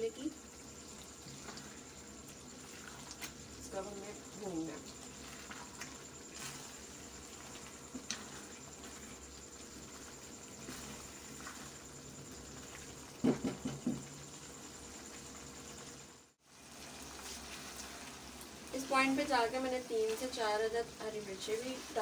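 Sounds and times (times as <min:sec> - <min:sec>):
curry sizzling in a pan: 0:00.0 - 0:22.0.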